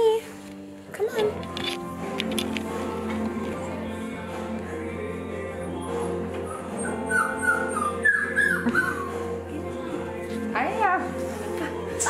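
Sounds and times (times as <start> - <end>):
background music: 0.0 - 12.0
puppy whining: 5.6 - 9.4.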